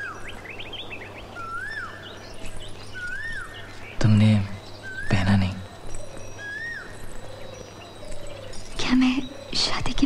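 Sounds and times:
faint high chirping: 0:00.0 - 0:10.0.

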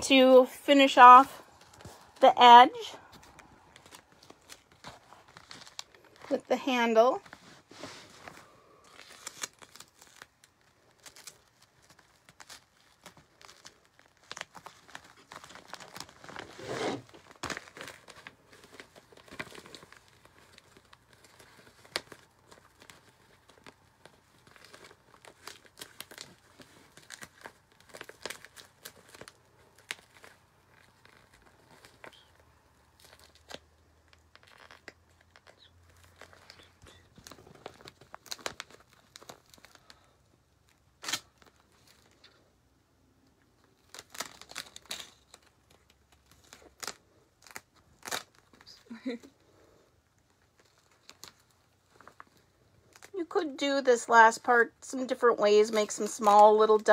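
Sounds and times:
plastic bag crinkling: 0:00.0 - 0:42.5, 0:43.4 - 0:56.9
duct tape tearing: 0:08.9 - 0:32.3, 0:33.0 - 0:40.1, 0:40.7 - 0:42.3, 0:43.7 - 0:48.9.

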